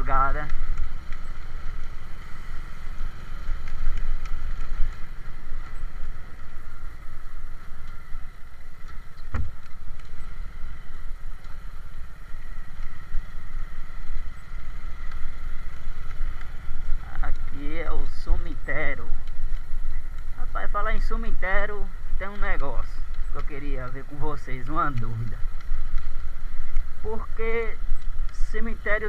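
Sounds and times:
person speaking: 17.0 - 19.2, 20.4 - 25.4, 27.0 - 29.0.

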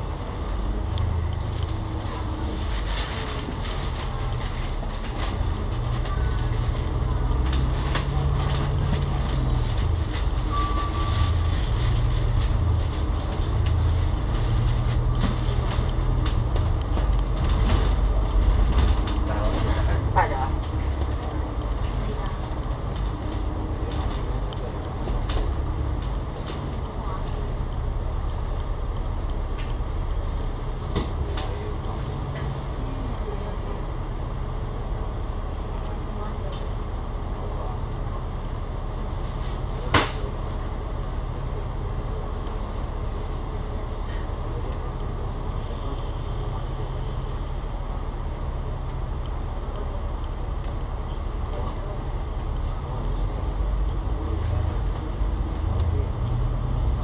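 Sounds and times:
bus diesel engine drone: 0.0 - 57.0.

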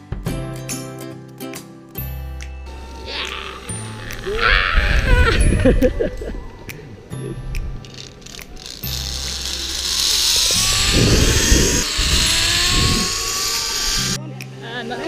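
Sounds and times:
background music: 0.0 - 15.0
pulleys hissing along cable: 2.7 - 6.3, 7.8 - 15.0.

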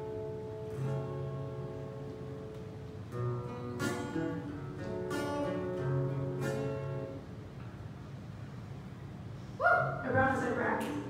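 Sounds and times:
acoustic guitar strumming chords: 0.0 - 7.6.

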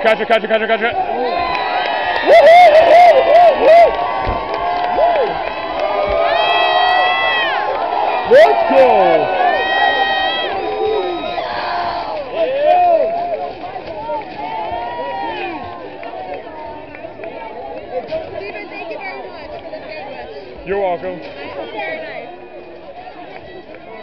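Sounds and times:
crowd cheering and shouting: 0.0 - 24.0.

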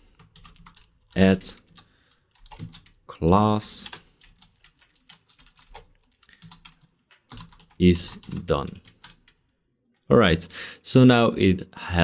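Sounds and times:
keyboard typing: 0.1 - 3.1, 3.8 - 9.4.

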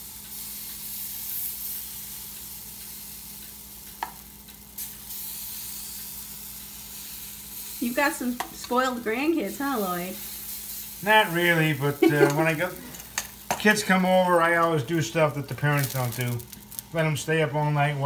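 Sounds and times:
batter sizzling on griddle: 0.0 - 18.0.

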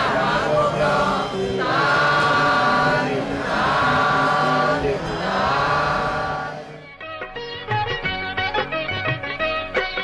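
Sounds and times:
group chanting in unison: 0.0 - 7.0.

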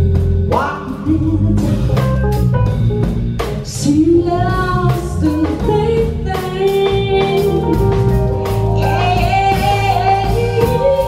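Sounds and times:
bass guitar: 0.0 - 11.0
drum kit beat: 0.0 - 11.0
piano: 0.0 - 11.0
woman singing: 0.6 - 2.0, 3.6 - 11.0.

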